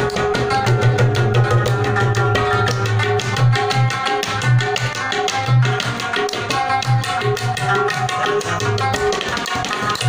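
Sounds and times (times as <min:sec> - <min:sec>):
plucked lute: 0:00.0 - 0:10.0
tabla drumming: 0:00.0 - 0:10.0.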